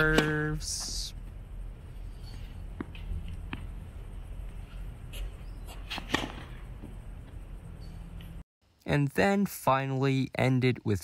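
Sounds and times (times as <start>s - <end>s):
racket hitting tennis ball: 0.0s - 0.6s, 5.0s - 7.0s
low outdoor rumble: 0.0s - 8.4s.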